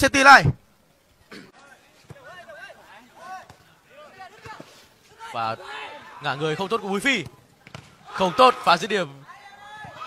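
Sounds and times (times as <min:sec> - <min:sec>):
faint shouts of players: 0:01.5 - 0:10.0.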